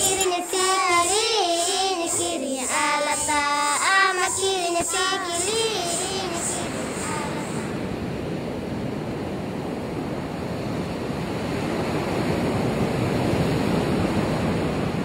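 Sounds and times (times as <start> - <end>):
ocean waves breaking on sand: 0.0 - 15.0.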